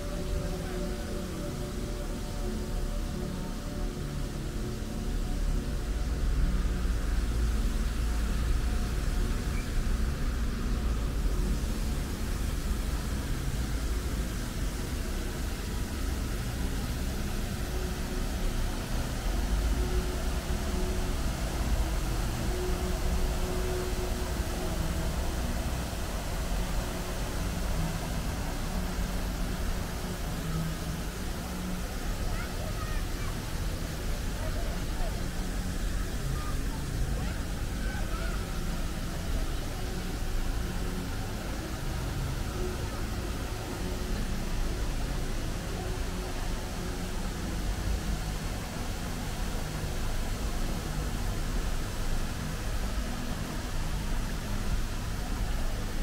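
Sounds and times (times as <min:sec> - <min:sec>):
city traffic rumble: 0:05.8 - 0:56.0.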